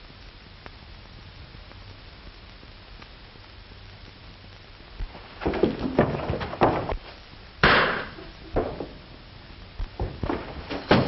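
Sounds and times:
knocks and thuds of a scuffle: 5.4s - 9.0s, 10.0s - 11.0s
gunshot: 7.6s - 8.2s.

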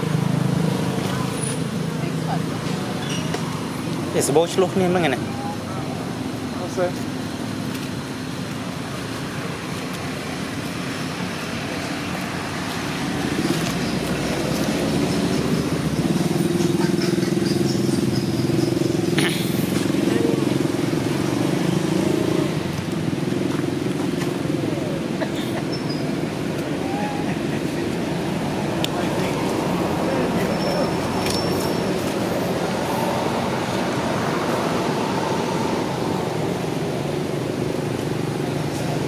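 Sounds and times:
outdoor background noise: 0.0s - 39.0s
vehicle engine humming: 0.0s - 39.0s.

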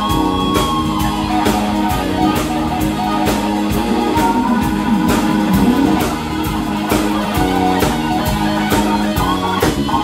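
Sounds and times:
bent electric guitar notes: 0.0s - 10.0s
blues-rock band playing: 0.0s - 10.0s.

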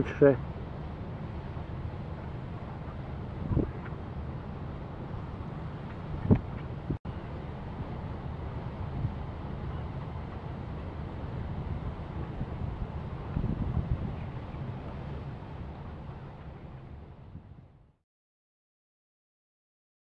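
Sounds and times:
wind buffeting microphone: 0.0s - 17.8s.

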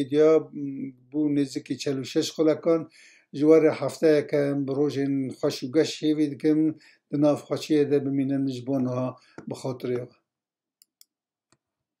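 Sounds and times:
man speaking: 0.0s - 10.1s.

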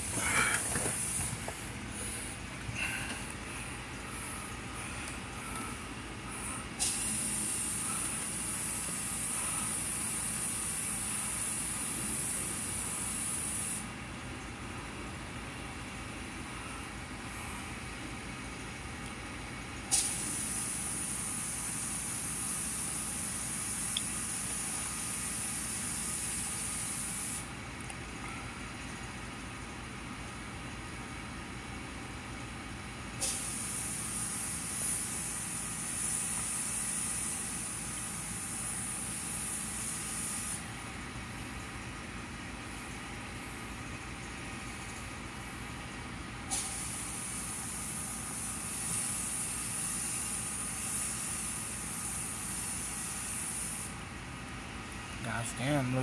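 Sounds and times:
steady hiss: 0.0s - 13.9s, 19.9s - 27.6s, 33.2s - 41.7s, 46.5s - 56.0s
low hum in vehicle cabin: 0.0s - 56.0s.

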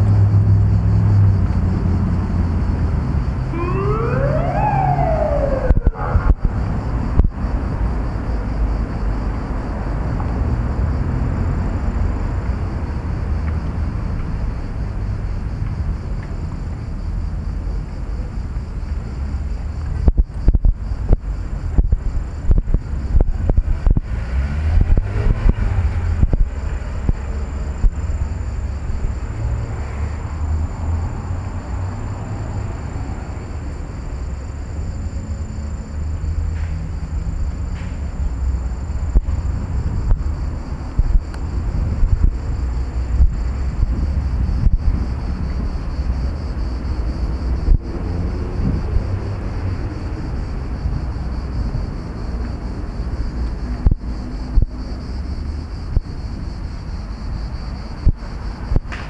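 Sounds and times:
wind buffeting microphone: 0.5s - 9.6s, 19.7s - 29.2s, 38.6s - 52.0s.

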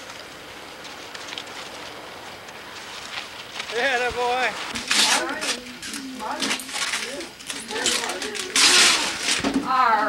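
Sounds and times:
outdoor background hiss: 0.0s - 10.0s
faint voices: 3.6s - 10.0s.

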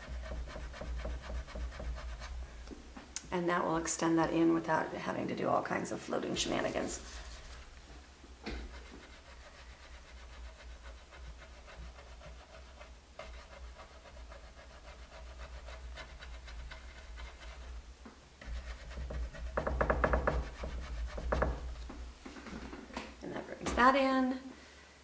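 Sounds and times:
loud breathy brush rasp: 0.0s - 2.4s, 8.6s - 17.8s
paintbrush scrubbing on wood: 0.0s - 2.4s, 6.3s - 7.8s, 8.5s - 22.0s.

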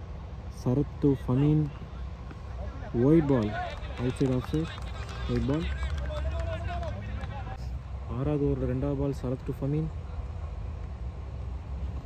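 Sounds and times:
faint voices: 1.6s - 7.7s.

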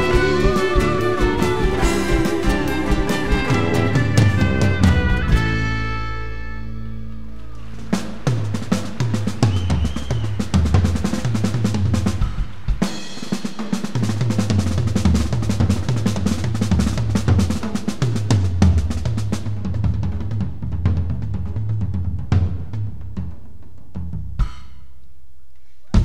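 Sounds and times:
drum kit played fast: 0.0s - 6.8s, 7.6s - 25.0s.

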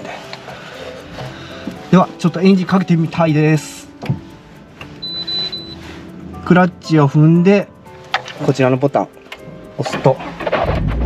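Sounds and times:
quiet background music: 0.0s - 11.0s
high electronic beep: 5.0s - 5.8s.

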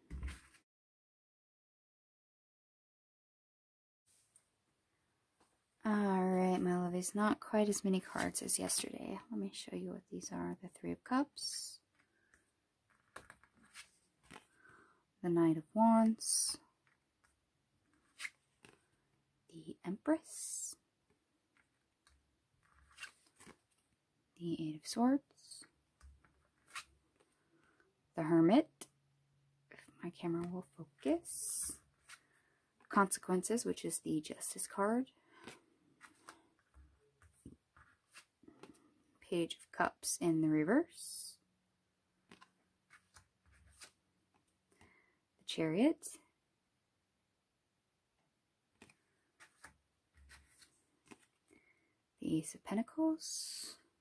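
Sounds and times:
cards rustling: 11.9s - 14.9s, 17.9s - 18.9s, 21.5s - 23.9s, 35.3s - 39.0s, 42.2s - 44.5s, 48.7s - 51.5s.

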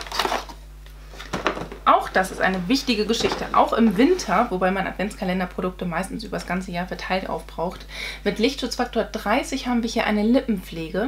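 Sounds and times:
cardboard rustling: 0.0s - 4.5s.

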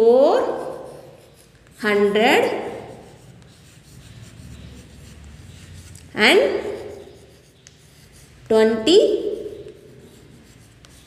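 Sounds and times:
chalk scratching on chalkboard: 0.2s - 11.0s.

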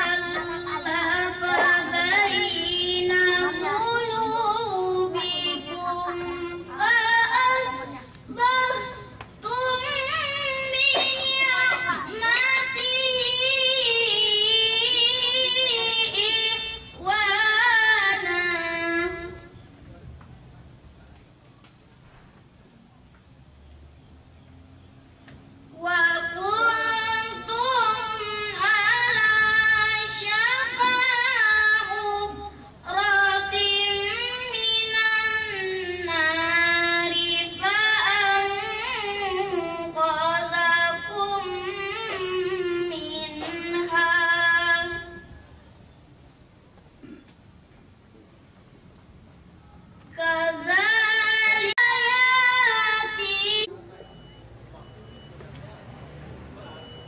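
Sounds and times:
high voice singing unaccompanied: 0.0s - 19.5s, 25.8s - 45.3s, 50.2s - 53.7s.

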